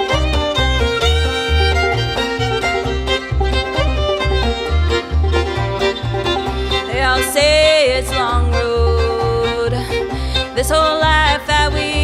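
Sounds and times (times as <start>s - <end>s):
banjo picking in quick rolls: 0.0s - 12.0s
upright bass playing low notes: 0.0s - 12.0s.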